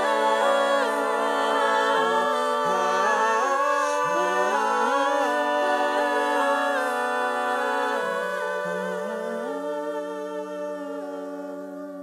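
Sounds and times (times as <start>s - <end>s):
vocal group singing in harmony: 0.0s - 12.0s.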